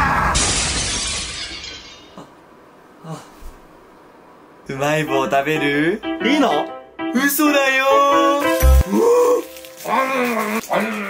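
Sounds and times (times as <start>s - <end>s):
glass shattering sound effect: 0.4s - 2.2s.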